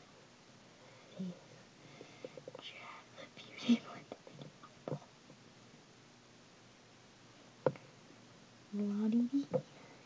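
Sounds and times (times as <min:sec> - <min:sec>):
person whispering: 0:02.6 - 0:04.2.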